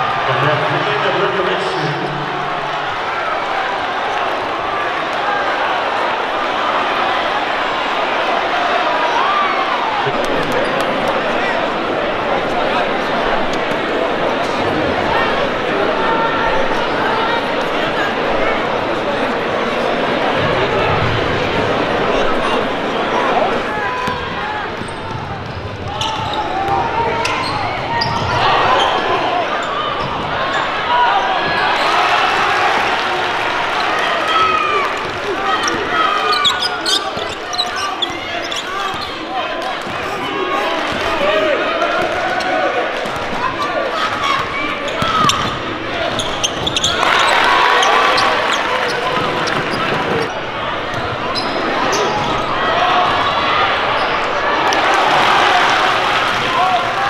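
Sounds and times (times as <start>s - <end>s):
voices and shouts: 0.0s - 57.0s.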